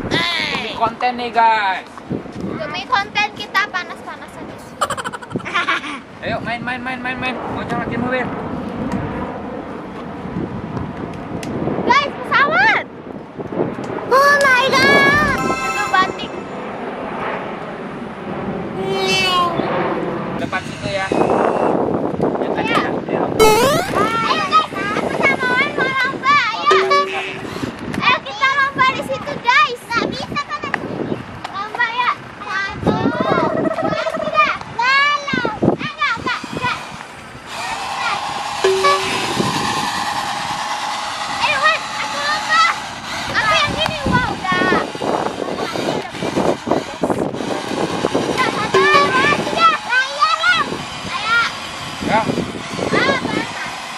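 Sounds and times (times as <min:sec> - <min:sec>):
jet flying overhead: 0:13.9 - 0:21.2, 0:37.1 - 0:51.2
children's voices: 0:14.1 - 0:16.4, 0:41.4 - 0:46.4
child's high voice: 0:14.1 - 0:16.5, 0:23.4 - 0:25.6
brief lower tone: 0:14.9 - 0:16.9, 0:23.4 - 0:24.1, 0:26.7 - 0:27.5, 0:38.7 - 0:39.4, 0:48.8 - 0:49.3
steady horn-like tone: 0:26.7 - 0:27.7, 0:38.6 - 0:39.8.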